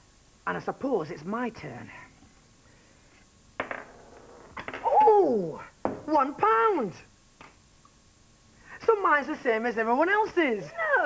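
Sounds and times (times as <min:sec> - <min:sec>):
coins tapping: 0:03.6 - 0:04.4
coin set down on cloth: 0:03.6 - 0:04.8.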